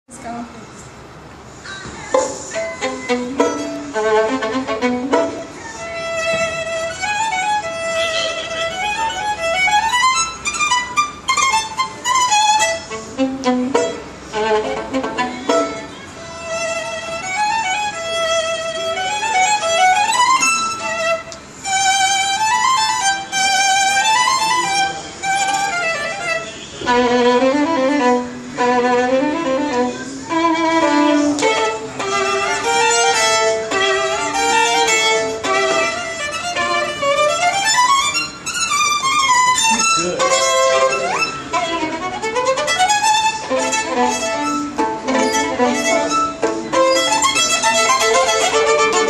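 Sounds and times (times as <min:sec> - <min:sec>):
solo violin melody: 0:02.2 - 0:49.0.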